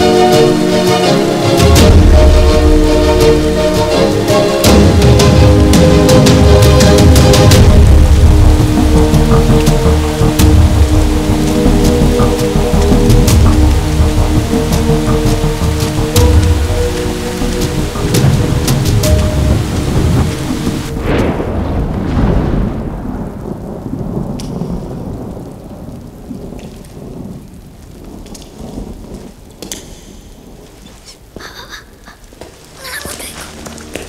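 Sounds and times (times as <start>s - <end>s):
music playing: 0.0s - 21.0s
thunderclap rolling: 0.0s - 32.8s
heavy rain: 0.0s - 34.0s
light ticks: 29.5s - 30.2s.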